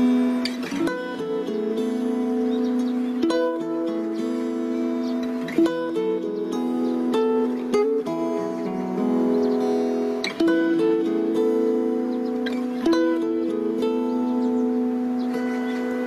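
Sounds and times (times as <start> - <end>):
acoustic guitar strummed chords: 0.0 - 16.0.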